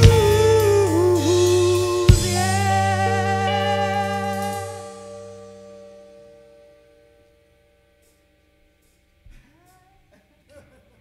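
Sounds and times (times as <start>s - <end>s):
electric guitar chord ringing out: 0.0s - 9.0s.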